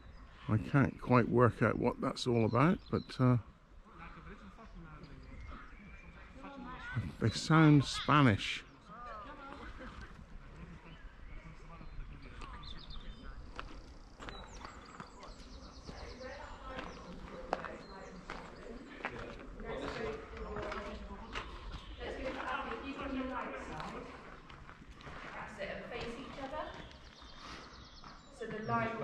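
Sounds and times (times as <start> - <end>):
faint voices talking: 0.0 - 29.0
footsteps on a dirt path: 12.3 - 29.0.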